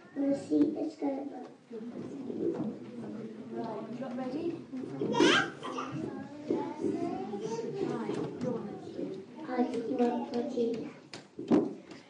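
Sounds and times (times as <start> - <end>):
children murmuring: 0.0 - 11.2.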